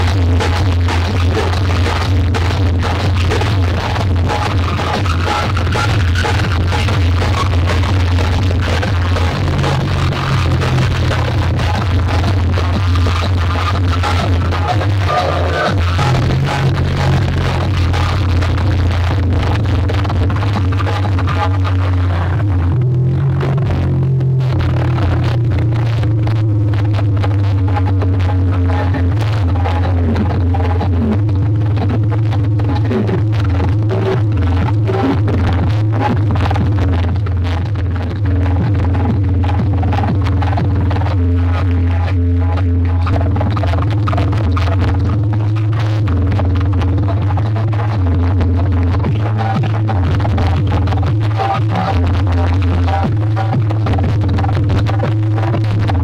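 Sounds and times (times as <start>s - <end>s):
loud electronic dance music: 0.0s - 56.0s.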